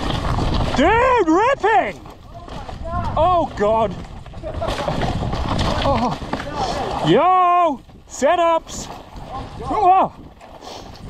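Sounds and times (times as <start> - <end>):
bike tyres rattling on rocky dirt: 0.0 - 11.0.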